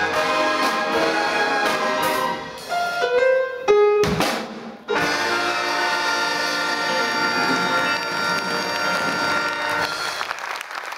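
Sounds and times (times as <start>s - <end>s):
big band brass chord: 0.0s - 2.7s, 4.9s - 10.1s
applause: 8.0s - 10.9s.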